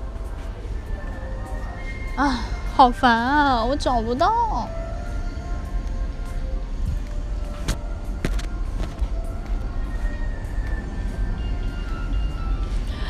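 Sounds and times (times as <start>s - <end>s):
faint background music: 0.0s - 13.0s
steady low rumble: 0.0s - 13.0s.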